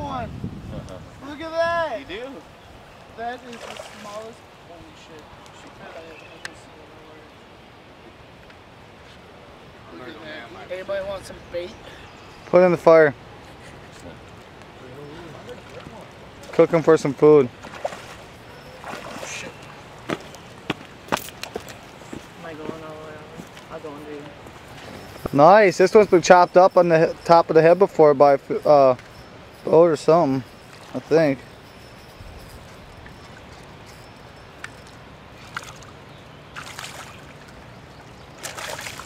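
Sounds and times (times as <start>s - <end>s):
moving water: 0.0s - 39.0s
fish splashing at water surface: 3.5s - 4.3s, 35.4s - 37.5s, 38.4s - 39.0s
fish splashing at surface: 38.4s - 39.0s.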